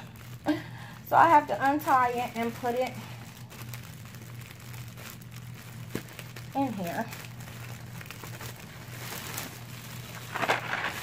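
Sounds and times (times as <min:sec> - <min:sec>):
cellophane crinkling: 0:00.0 - 0:11.0
steady low hum: 0:00.0 - 0:11.0.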